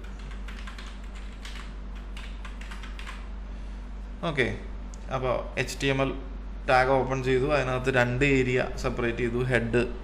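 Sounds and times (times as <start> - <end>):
steady low hum: 0.0 - 10.0
computer keyboard key clicks: 0.1 - 3.2.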